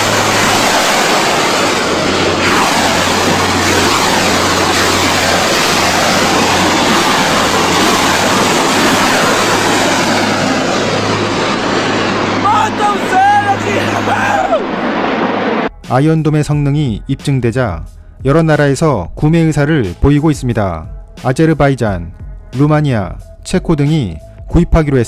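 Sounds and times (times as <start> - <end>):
rocket motors roaring: 0.0 - 15.7.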